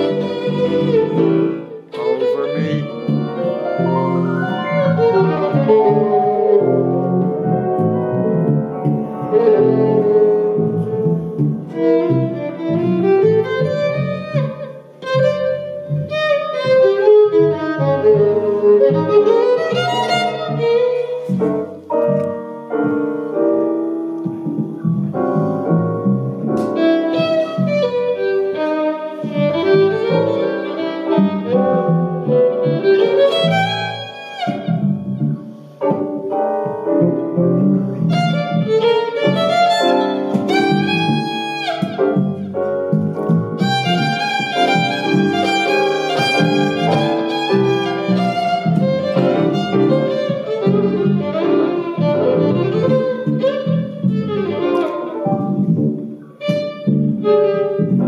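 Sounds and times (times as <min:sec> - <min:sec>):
digital piano: 0:00.0 - 0:58.0
violin melody: 0:00.0 - 0:58.0.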